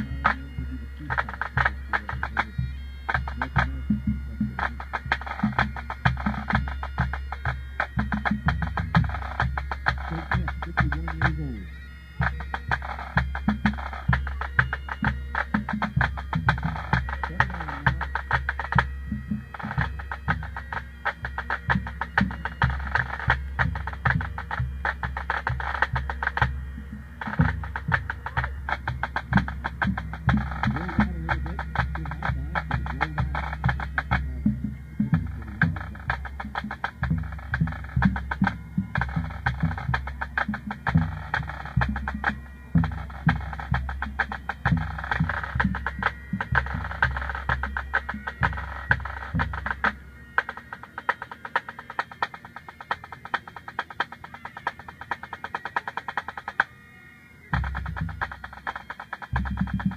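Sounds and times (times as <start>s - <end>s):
tenor drums: 0.0s - 56.8s, 57.4s - 59.9s
bass drum: 12.2s - 50.0s
snare drum rolls: 27.2s - 34.5s.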